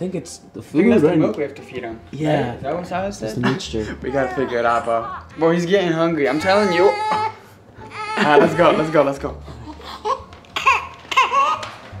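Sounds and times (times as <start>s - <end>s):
newborn baby crying: 3.7s - 11.8s.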